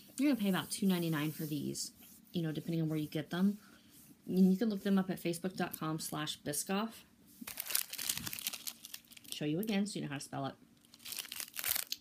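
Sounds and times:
plastic wrapper crinkling: 7.4 - 9.8, 10.8 - 12.0.

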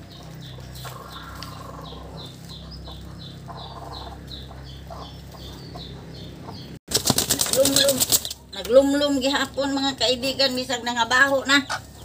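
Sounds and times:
chicks peeping: 0.0 - 8.4
hen clucking: 0.0 - 12.0.

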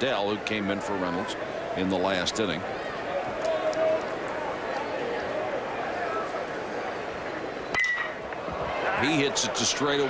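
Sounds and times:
stadium crowd noise: 0.0 - 10.0
metal bat hitting ball: 7.7 - 8.2.

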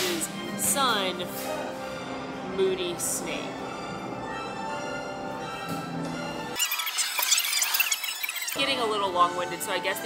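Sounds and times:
background music: 0.0 - 6.7, 8.6 - 10.0
shrill squeaky warbling chatter: 6.6 - 8.9.

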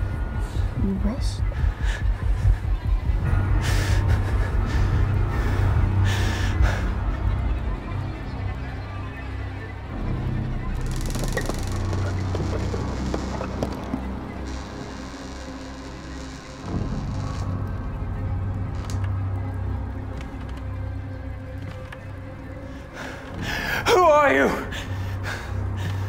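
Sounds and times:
ominous low drone: 0.0 - 23.6
wooden door creaking open: 10.8 - 18.0, 18.6 - 19.2.

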